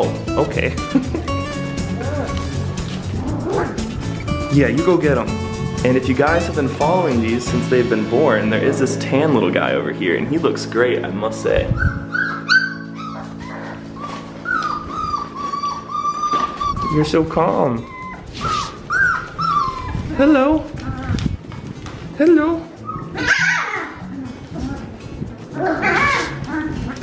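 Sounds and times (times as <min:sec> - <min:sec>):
background music: 0:00.0 - 0:27.0
puppies whimpering: 0:11.7 - 0:21.3, 0:22.8 - 0:27.0.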